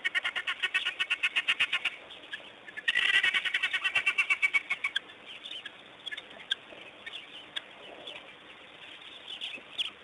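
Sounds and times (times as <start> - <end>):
rapid high animal chirps: 0.0 - 10.0.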